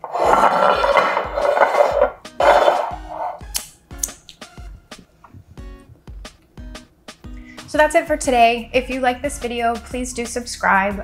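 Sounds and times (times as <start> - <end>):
kitchenware scraping and rattling: 0.0 - 3.4
background music with steady beat: 0.3 - 11.0.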